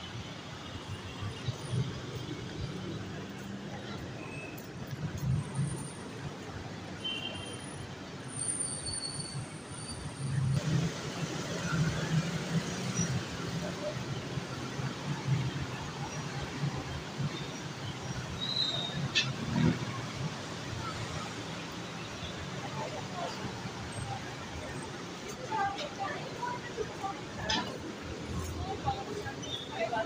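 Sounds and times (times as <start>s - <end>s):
city traffic rumble: 0.0s - 30.0s.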